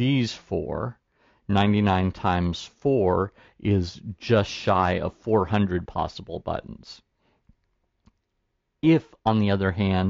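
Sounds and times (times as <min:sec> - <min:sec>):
man speaking: 0:00.0 - 0:07.1, 0:08.8 - 0:10.0.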